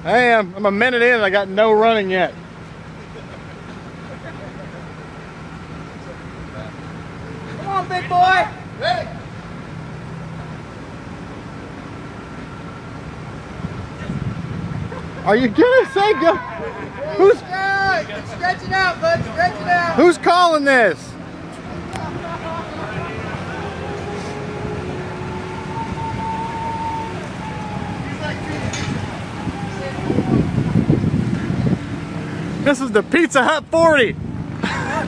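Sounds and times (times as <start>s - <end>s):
outdoor background noise: 0.0s - 35.0s
road traffic rumble: 0.0s - 35.0s
vehicle engine humming: 0.0s - 35.0s
faint voices: 13.9s - 33.2s.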